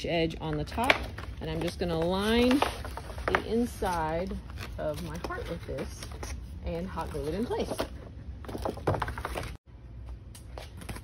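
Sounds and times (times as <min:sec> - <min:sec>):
paper crinkling and scraping: 0:01.1 - 0:09.6.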